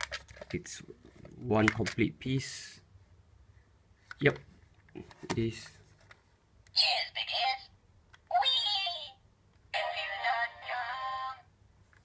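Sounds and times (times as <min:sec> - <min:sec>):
toy robot recorded voice clips: 0:06.7 - 0:07.7, 0:08.3 - 0:09.2, 0:09.8 - 0:11.4.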